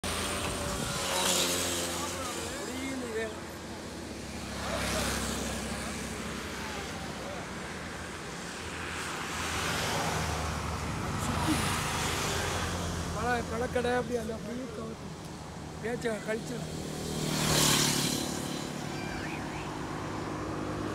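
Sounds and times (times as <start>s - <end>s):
highway traffic passing: 0.0s - 20.9s
motorcycles passing: 0.0s - 20.9s.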